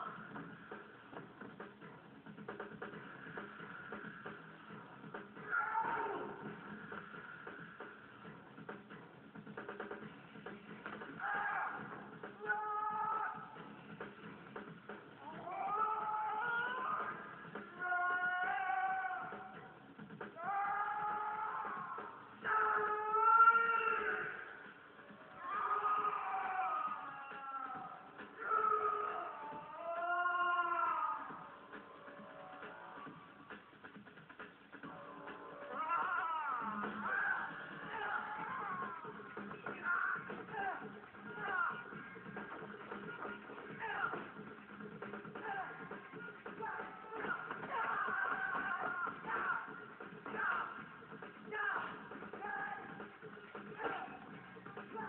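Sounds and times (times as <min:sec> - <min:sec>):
film background music: 0:00.0 - 0:55.0
shrill falling cry: 0:05.4 - 0:06.4, 0:15.2 - 0:19.6, 0:20.4 - 0:24.5, 0:25.3 - 0:31.6, 0:35.6 - 0:39.2.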